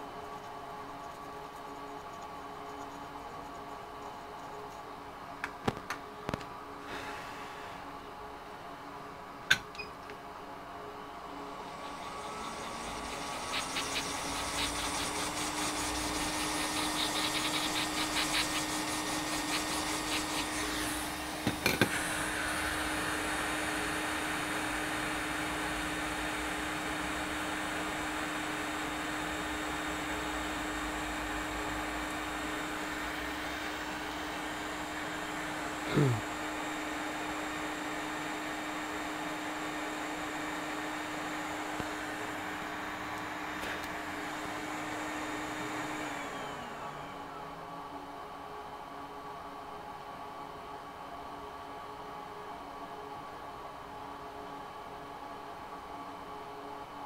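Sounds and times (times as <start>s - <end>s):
electric blower motor humming: 11.2s - 47.7s.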